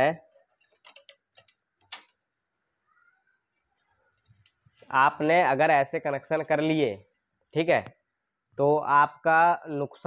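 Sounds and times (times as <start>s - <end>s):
faint clicks and taps of wires: 0.3s - 2.2s, 3.8s - 5.0s.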